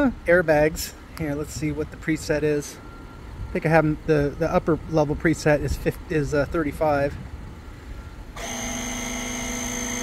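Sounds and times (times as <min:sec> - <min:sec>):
air compressor humming and whining: 0:07.2 - 0:10.0.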